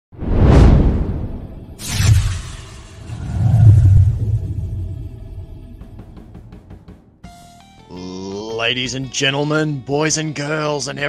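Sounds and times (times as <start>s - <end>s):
sharp whoosh hit: 0.2s - 6.8s
cinematic whoosh: 0.2s - 7.0s
deep rumble: 0.8s - 6.8s.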